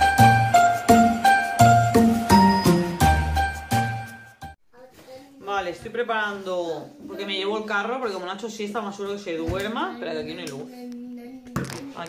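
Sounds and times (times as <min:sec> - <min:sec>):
bright chiming notes: 0:00.0 - 0:04.6
upbeat intro jingle: 0:00.0 - 0:04.6.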